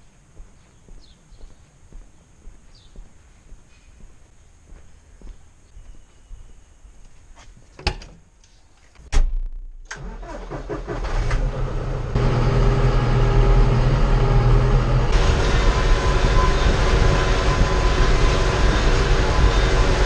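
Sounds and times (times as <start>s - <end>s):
tractor diesel engine starting: 9.9s - 20.0s
rushing noise: 12.1s - 20.0s.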